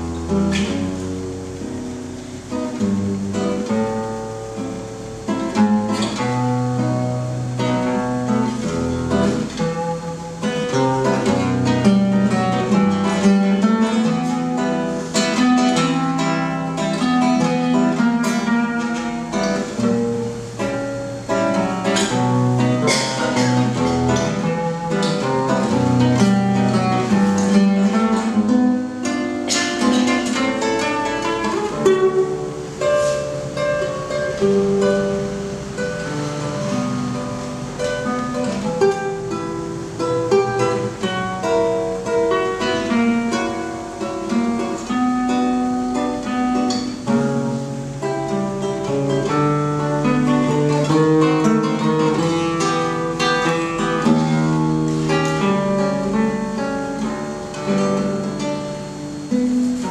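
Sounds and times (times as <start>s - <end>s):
acoustic guitar music: 0.0s - 59.9s.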